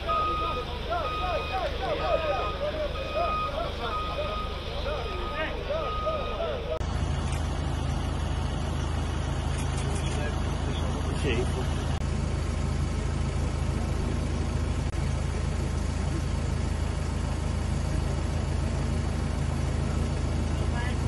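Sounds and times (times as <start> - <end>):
people's voices: 0.0 - 6.8
vehicle reversing beeper: 0.0 - 8.2
low engine rumble: 0.0 - 21.0.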